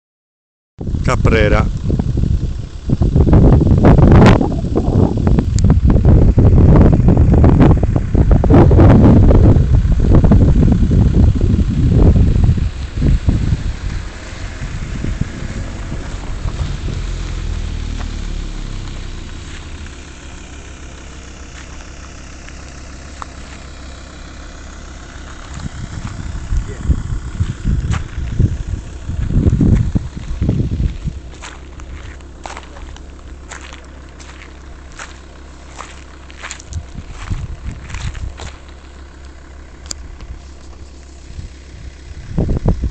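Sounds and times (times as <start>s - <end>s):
wind buffeting microphone: 0.8s - 20.0s, 25.4s - 38.7s, 41.2s - 42.9s.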